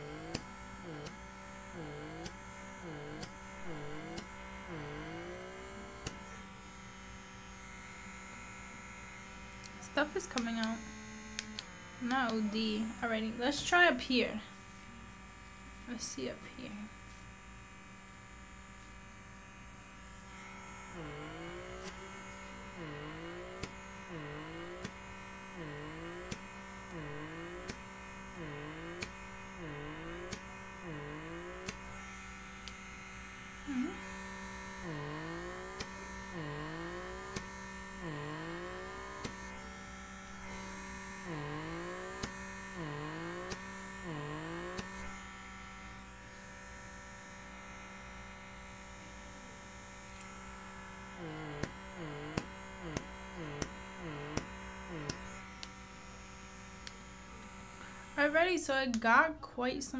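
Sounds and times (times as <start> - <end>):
suction device motor hum: 0.0 - 58.6.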